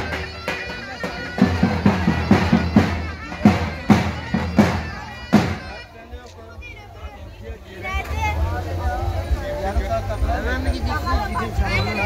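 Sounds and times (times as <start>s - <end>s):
murmur of voices: 0.0s - 12.0s
bass drum strikes: 1.4s - 5.7s.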